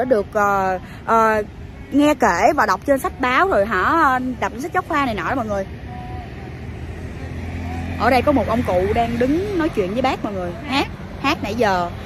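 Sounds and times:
motor vehicle engine droning: 3.2s - 12.0s.

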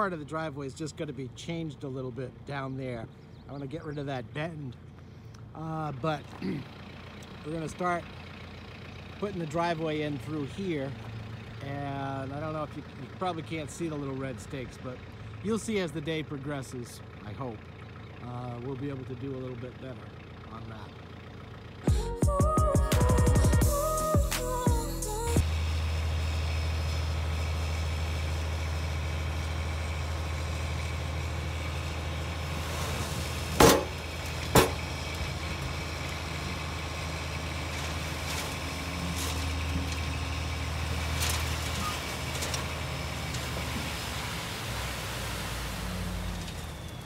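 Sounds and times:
dump truck engine running: 0.0s - 47.0s
load tipping from truck bed: 32.6s - 35.0s, 37.6s - 44.2s
sharp clunks: 33.6s - 34.9s.

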